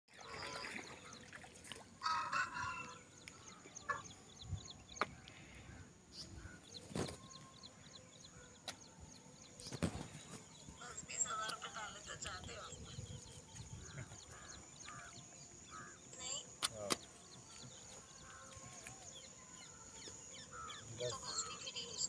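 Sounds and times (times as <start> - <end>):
birds chirping: 0.1 - 22.0.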